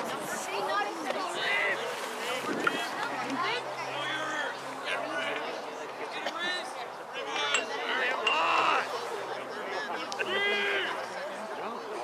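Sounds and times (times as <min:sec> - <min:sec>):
wind noise on microphone: 0:02.2 - 0:03.4.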